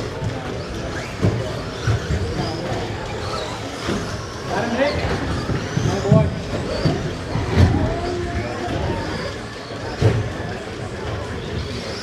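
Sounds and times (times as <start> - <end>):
people talking: 0.0 - 12.0
rc trucks running: 0.0 - 12.0.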